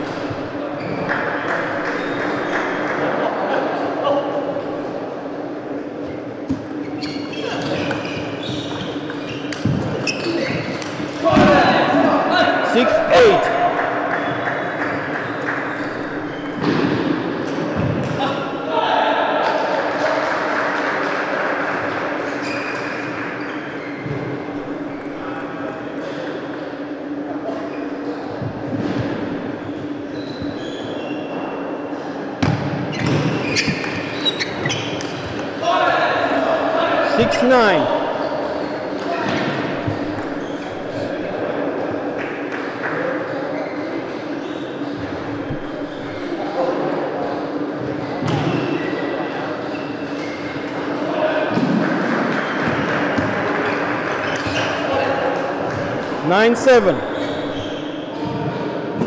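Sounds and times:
steady hall hum: 0.0 - 59.0
shoe squeak: 6.0 - 10.9, 15.6 - 16.6, 22.2 - 25.3, 29.8 - 31.4, 32.9 - 35.1, 39.4 - 41.2, 43.5 - 46.5, 54.2 - 54.9, 56.8 - 58.6
players' voices: 10.2 - 22.2, 35.5 - 47.7, 53.0 - 58.6.

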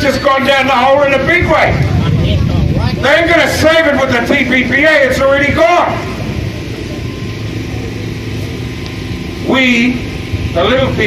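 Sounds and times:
constant hum: 0.0 - 11.0
machine rumbling: 0.0 - 11.0.

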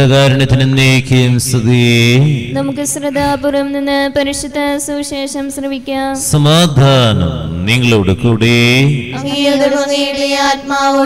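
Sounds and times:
man chanting: 0.0 - 2.6, 6.3 - 11.0
higher sung line: 9.1 - 11.0.

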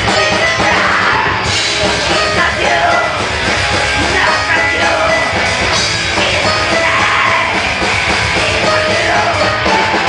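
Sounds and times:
electric guitars: 0.0 - 10.0
metal band playing live: 0.0 - 10.0
vocalist singing into microphone: 2.1 - 3.3, 4.0 - 5.5, 6.1 - 7.7, 8.3 - 10.0.

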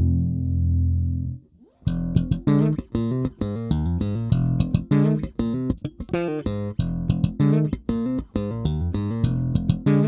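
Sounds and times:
electric bass notes: 0.0 - 10.0.

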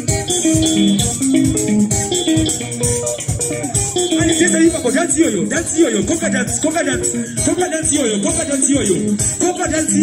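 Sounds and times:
bass guitar: 0.0 - 10.0
drum beat and cymbals: 0.0 - 10.0
electric guitar lines: 0.0 - 10.0.

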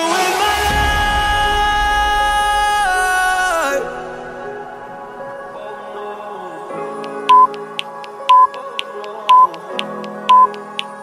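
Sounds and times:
background music: 0.0 - 11.0
timer beeping: 7.0 - 10.9.

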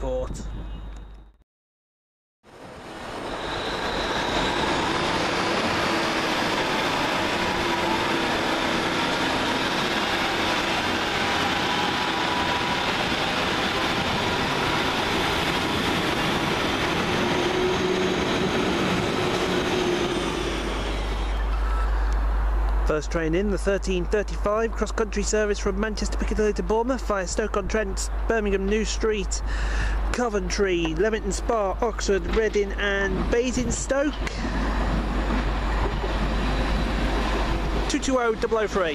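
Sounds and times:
train wheels rumbling on rail: 2.9 - 22.9, 23.5 - 38.9.

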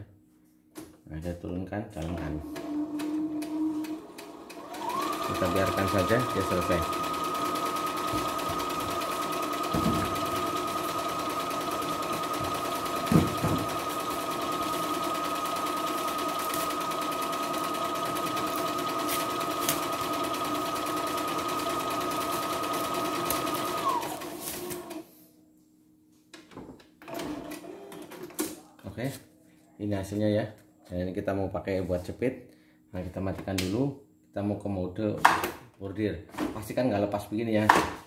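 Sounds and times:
sewing machine motor whine: 2.4 - 25.0.

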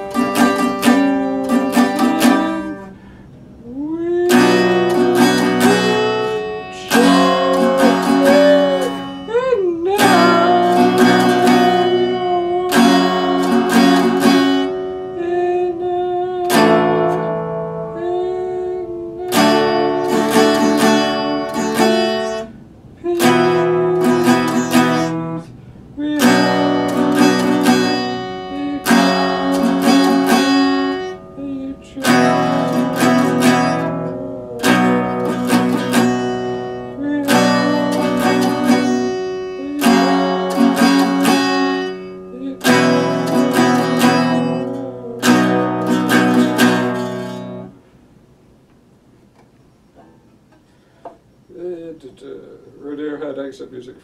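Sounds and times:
acoustic guitar chords: 0.0 - 53.3.

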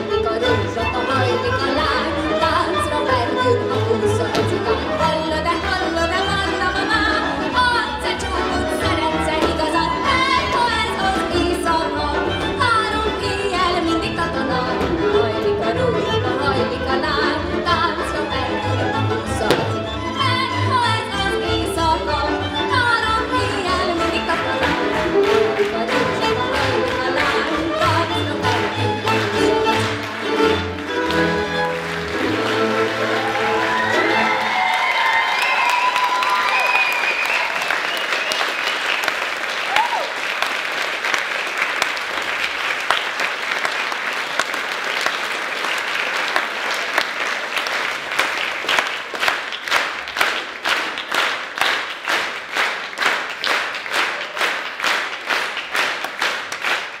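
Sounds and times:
folk string band playing: 0.0 - 34.7
rhythmic clapping in unison: 22.3 - 57.0
audience applause: 24.2 - 57.0.

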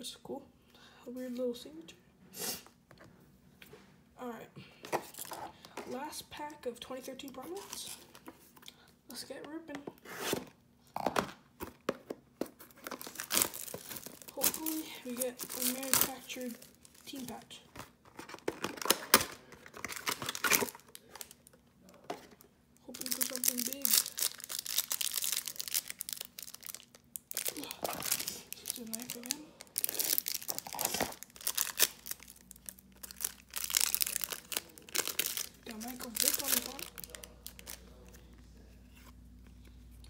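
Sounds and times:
plastic wrap crinkling and tearing: 5.0 - 5.5, 12.6 - 22.0, 22.9 - 38.3.

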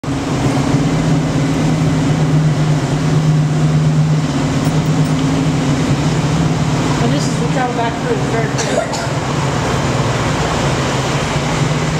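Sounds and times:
tram engine running: 0.0 - 11.9.

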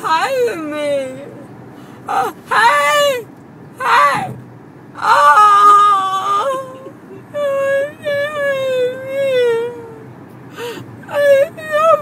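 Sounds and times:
woman wailing: 5.0 - 9.9.

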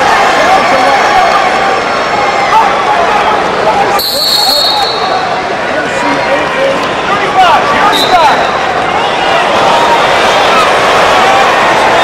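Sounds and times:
crowd yelling and cheering: 0.0 - 12.0
short high whistle: 4.0 - 5.2.

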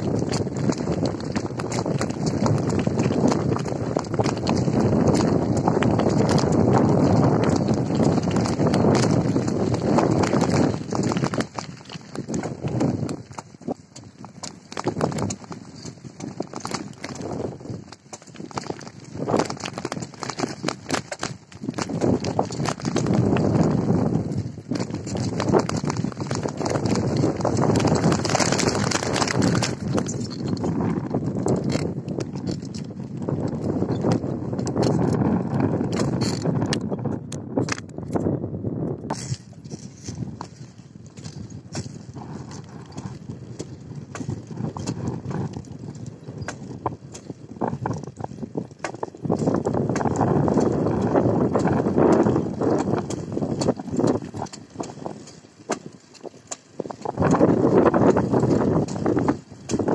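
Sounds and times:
bike rattling: 0.0 - 38.4, 39.1 - 59.9
bicycle riding on rough ground: 0.0 - 59.9.

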